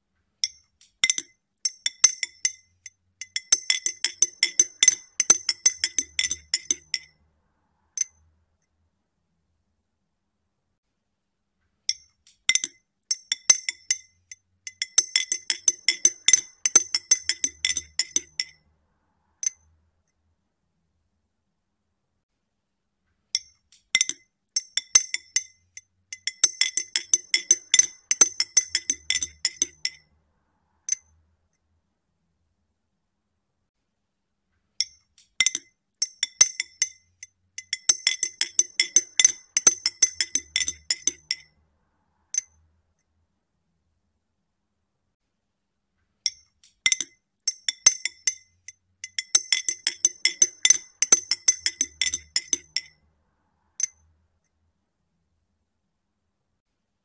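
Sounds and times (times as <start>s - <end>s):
teaspoon clinking against glass: 0.4s - 7.1s, 11.9s - 18.6s, 23.4s - 30.0s, 34.8s - 41.5s, 46.3s - 53.0s.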